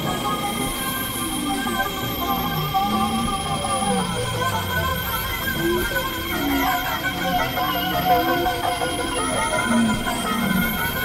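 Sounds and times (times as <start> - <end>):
gliding high whistle: 0.0 - 11.0
steady high drone tones: 0.0 - 11.0.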